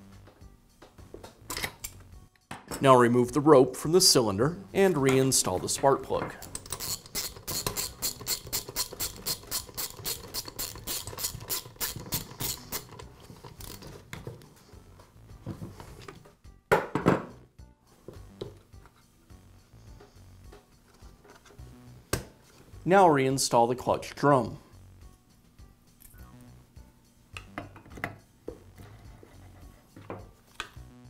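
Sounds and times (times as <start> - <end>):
socket ratchet clicking: 6.4 - 13.8.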